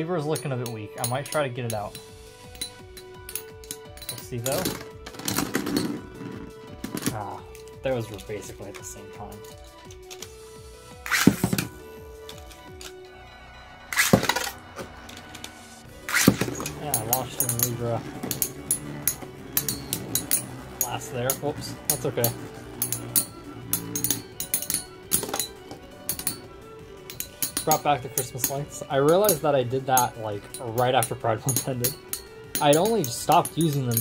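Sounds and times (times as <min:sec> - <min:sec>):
background music: 0:00.0 - 0:34.0
spinning tops clattering together: 0:16.0 - 0:34.0.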